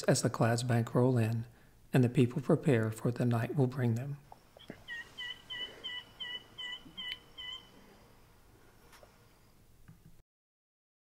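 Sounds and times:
bird calling short notes: 4.6s - 7.8s.

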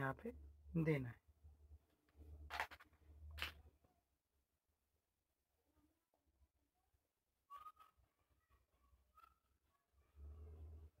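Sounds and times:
faint whistle-like chirp: 7.5s - 8.2s.

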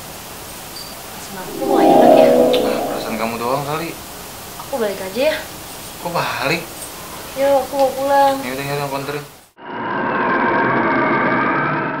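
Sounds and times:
rushing noise: 1.4s - 3.6s
siren-like wail: 1.4s - 3.6s.

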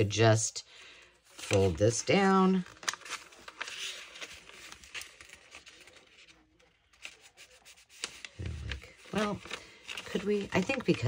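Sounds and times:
page being folded and creased: 1.3s - 11.0s
fingers rubbing paper pages: 2.7s - 11.0s.

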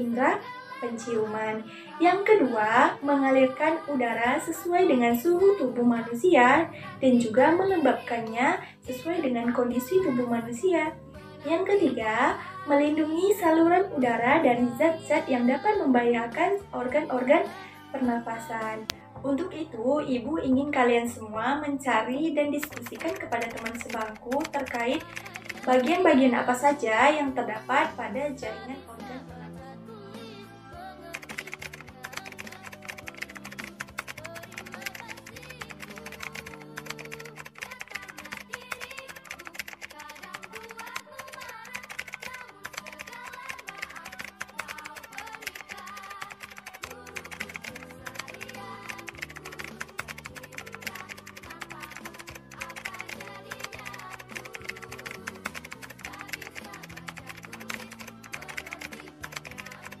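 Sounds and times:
background music low notes: 0.0s - 60.0s
rapid keyboard typing clicks: 22.6s - 26.1s, 31.1s - 60.0s.

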